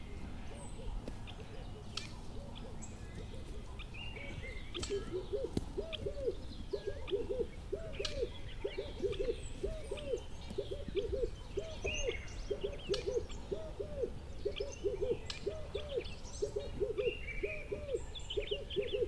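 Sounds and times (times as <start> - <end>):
birds calling: 0.0 - 19.0.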